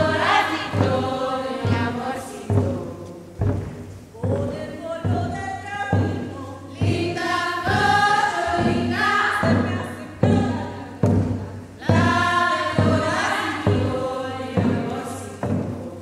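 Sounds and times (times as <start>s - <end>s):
deep regular thump: 0.0s - 16.0s
women's choir singing: 0.0s - 16.0s.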